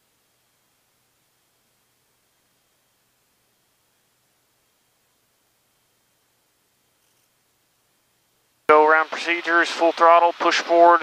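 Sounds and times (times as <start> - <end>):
man's voice: 8.7 - 11.0.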